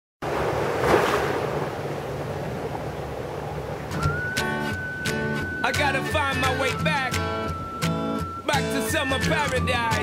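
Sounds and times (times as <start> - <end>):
small waves breaking on sand: 0.2 - 4.0.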